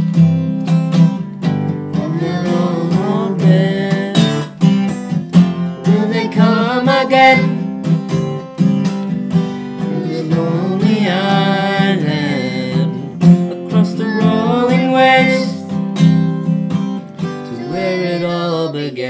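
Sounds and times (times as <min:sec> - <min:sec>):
acoustic guitar strumming: 0:00.0 - 0:19.0
people singing: 0:01.9 - 0:04.5, 0:05.4 - 0:07.7, 0:09.6 - 0:15.8, 0:17.3 - 0:19.0.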